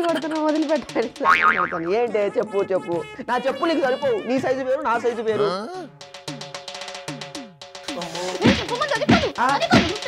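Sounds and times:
cartoon boing sound effect: 1.2 - 1.9
man crying: 5.4 - 6.0.

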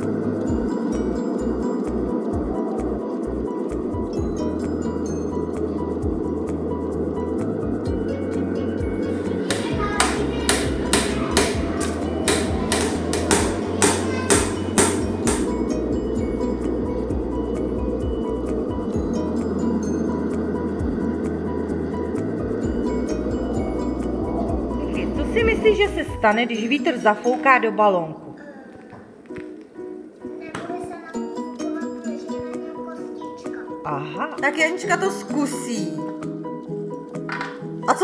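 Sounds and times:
background music: 0.0 - 38.0
hammer striking: 9.3 - 15.8.

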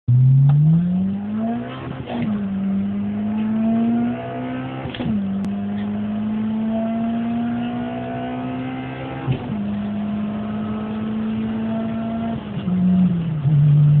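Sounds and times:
car engine at full throttle: 0.1 - 14.0.

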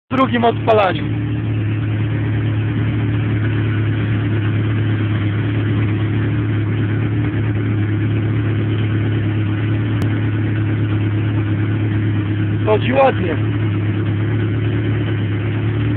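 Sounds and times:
car engine idling: 0.1 - 15.9.

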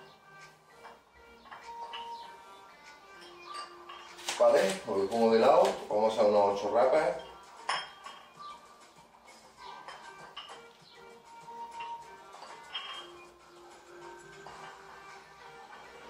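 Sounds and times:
background music: 0.0 - 16.0
dumbbell plates clanking: 0.8 - 2.3, 7.1 - 8.5, 9.4 - 10.8, 11.6 - 13.3, 14.1 - 15.1
person speaking: 4.4 - 7.0.

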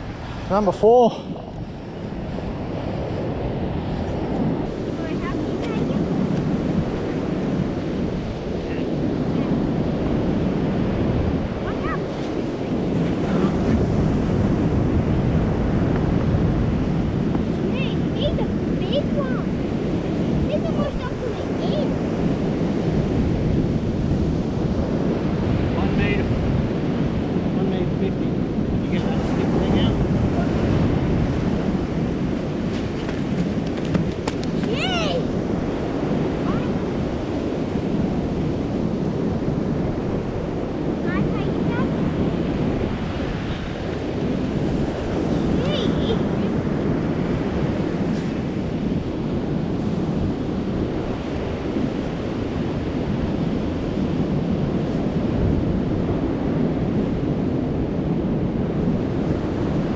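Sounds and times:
surf breaking on beach: 0.0 - 59.9
wind buffeting microphone: 0.0 - 59.9.

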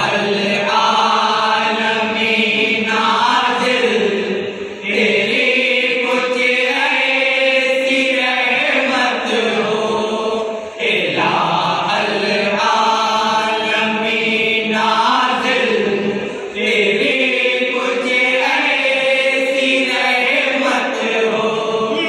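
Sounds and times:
men chanting in unison: 0.0 - 22.0.

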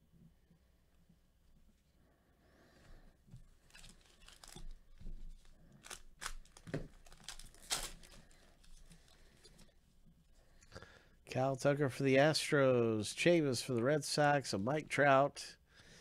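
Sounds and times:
foil wrapper tearing and crinkling: 3.7 - 9.2.

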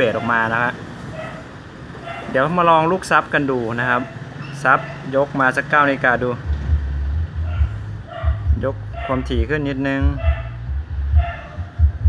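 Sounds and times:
deep bass pulsing: 5.4 - 12.0.

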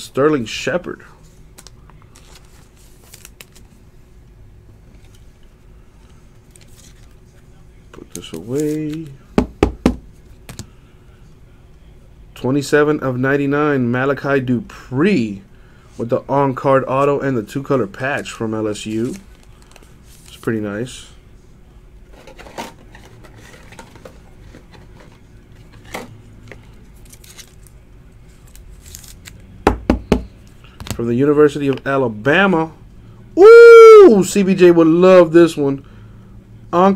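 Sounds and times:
plastic sleeve rustling: 1.6 - 3.8, 22.1 - 29.4.

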